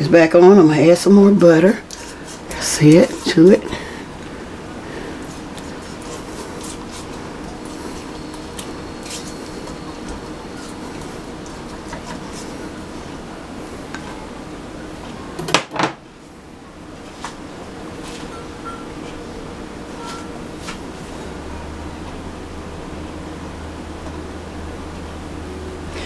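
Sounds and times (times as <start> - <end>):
spatula stirring: 5.1 - 13.2.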